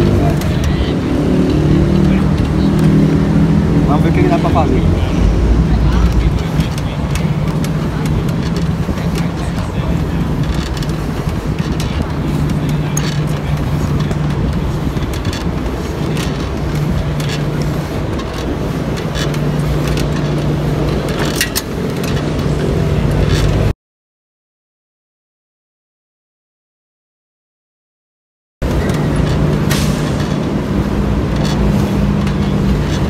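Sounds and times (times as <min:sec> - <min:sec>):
low engine drone: 0:00.0 - 0:23.7, 0:28.6 - 0:33.0.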